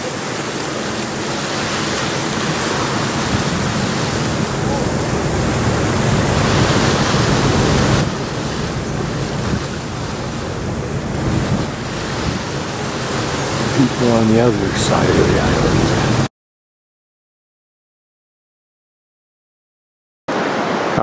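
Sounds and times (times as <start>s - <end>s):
rushing water: 0.0s - 16.3s, 20.3s - 21.0s
steady wind: 0.0s - 16.3s, 20.3s - 21.0s
wind buffeting microphone: 0.0s - 16.3s.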